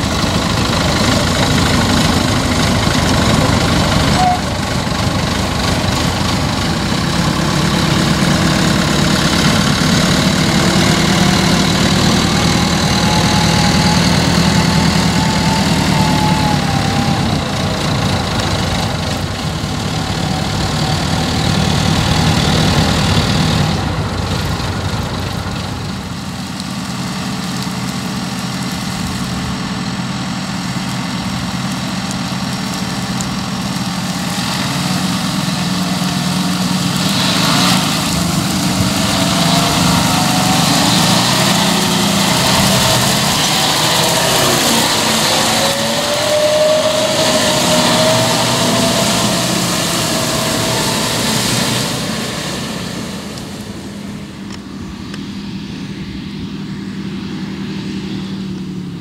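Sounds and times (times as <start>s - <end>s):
diesel engines of farm machinery: 0.0s - 59.0s.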